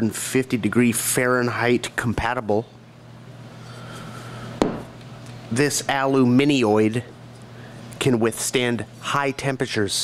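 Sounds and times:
low steady hum: 0:00.0 - 0:10.0
knock on wooden workbench: 0:04.6 - 0:04.9.

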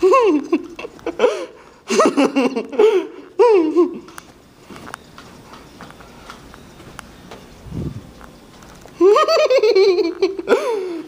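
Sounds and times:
child giggling: 0:00.0 - 0:04.1, 0:09.0 - 0:11.0.

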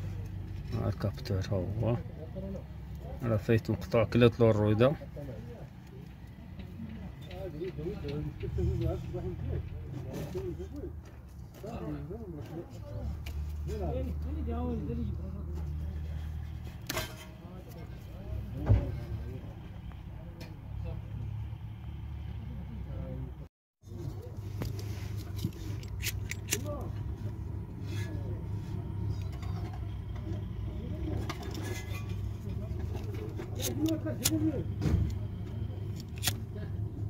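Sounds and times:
vehicle engine idling: 0:00.0 - 0:37.0.

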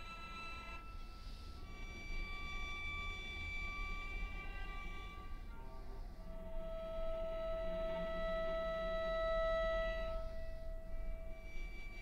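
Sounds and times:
cello long bowed note: 0:00.0 - 0:12.0.

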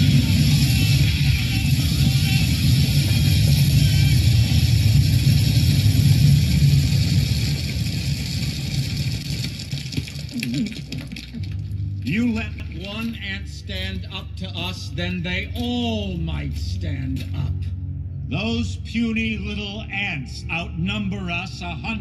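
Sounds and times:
music: 0:00.0 - 0:06.5, 0:10.6 - 0:22.0
grain pouring rushing rumble: 0:00.0 - 0:13.2.

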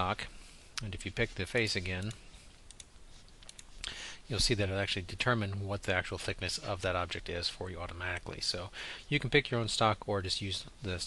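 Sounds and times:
computer mouse clicks: 0:02.0 - 0:03.8.

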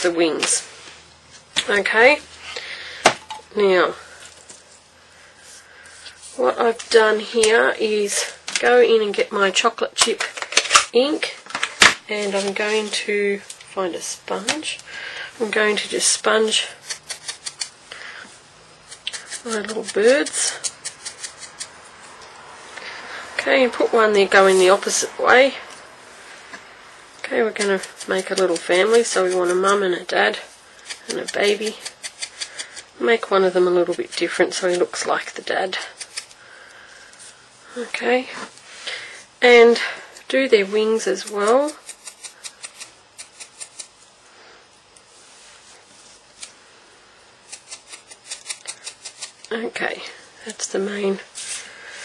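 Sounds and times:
soft rubbing: 0:40.4 - 0:46.4.

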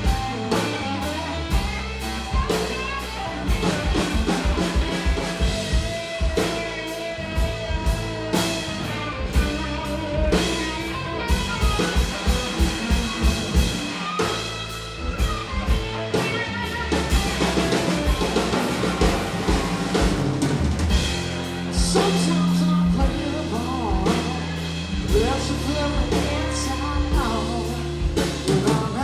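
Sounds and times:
drum beat: 0:00.0 - 0:25.4
electric guitar held notes: 0:00.0 - 0:28.1
bass guitar: 0:00.0 - 0:29.0.

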